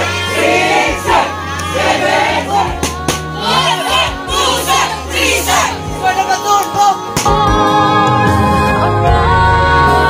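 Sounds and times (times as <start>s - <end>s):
young voices chanting and shouting: 0.0s - 7.2s
crowd voices: 0.0s - 9.1s.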